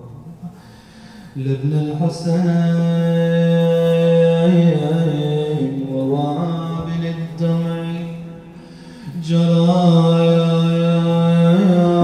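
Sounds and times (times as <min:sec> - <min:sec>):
man chanting a lament: 0:01.4 - 0:12.0.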